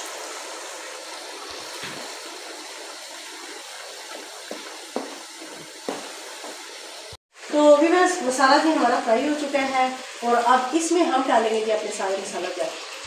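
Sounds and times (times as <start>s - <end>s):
masala sizzling in a frying pan: 0.0s - 13.0s.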